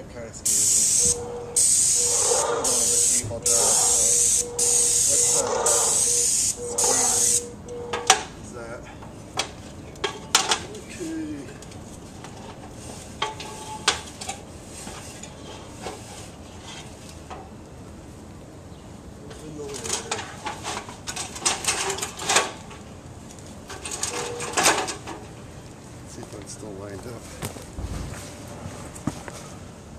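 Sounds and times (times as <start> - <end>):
paint sprayer hissing: 0.5 - 7.5
knocks and clinks on metal ladder: 23.7 - 25.2.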